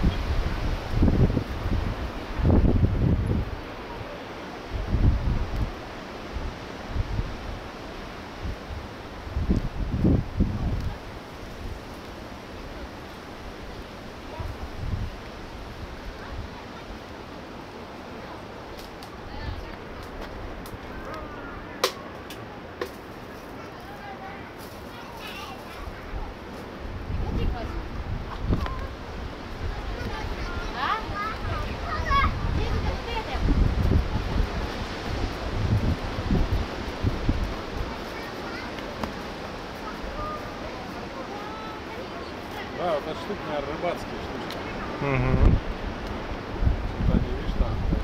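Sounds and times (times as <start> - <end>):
wind buffeting microphone: 0.0 - 21.8, 24.8 - 48.0
outdoor background hiss: 0.0 - 48.0
faint voices of people: 3.7 - 4.6, 18.0 - 35.6, 37.7 - 45.7.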